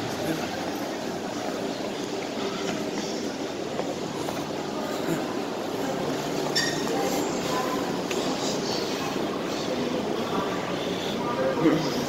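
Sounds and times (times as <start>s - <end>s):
railway station rumble and hiss: 0.0s - 12.0s.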